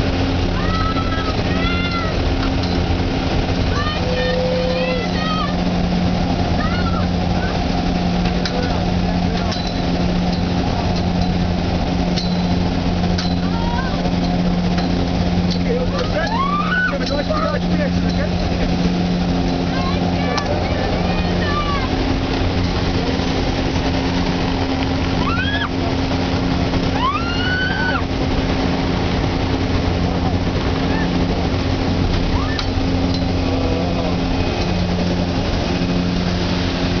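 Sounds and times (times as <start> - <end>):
propeller engine drone: 0.0 - 37.0
people shouting: 16.1 - 17.1, 25.2 - 25.8, 26.9 - 28.1, 32.3 - 32.6.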